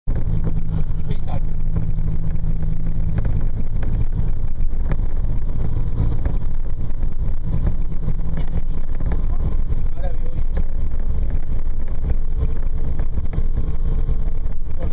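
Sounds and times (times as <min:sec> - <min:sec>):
vehicle engine and road noise: 0:00.0 - 0:14.9.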